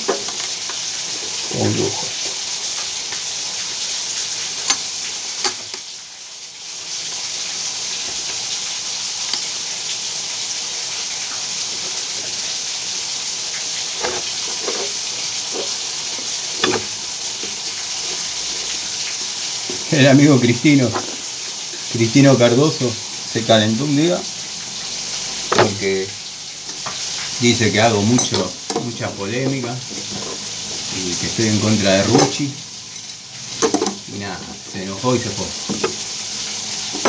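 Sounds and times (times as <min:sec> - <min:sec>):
water hissing from open valve: 0:00.0 - 0:37.0.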